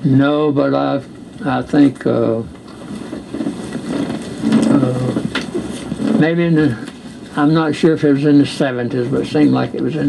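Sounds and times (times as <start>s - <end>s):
man hesitating uhh: 4.4s - 5.5s.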